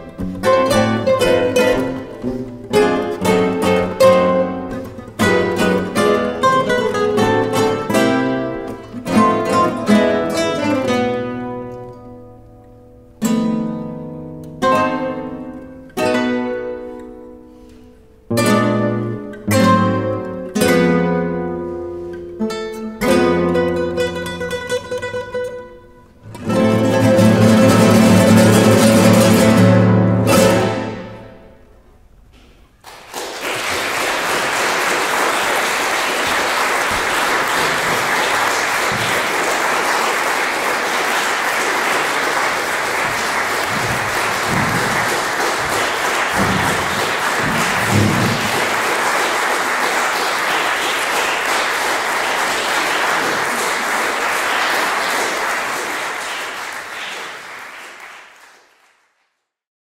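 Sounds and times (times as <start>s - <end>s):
audience applauding: 32.8s - 59.3s.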